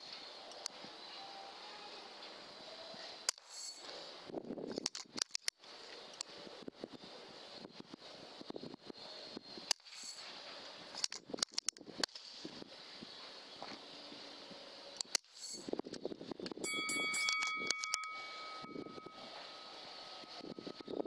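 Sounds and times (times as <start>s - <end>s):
sharp clicks: 4.8s - 6.3s, 10.9s - 12.2s, 15.0s - 16.6s, 17.2s - 18.2s.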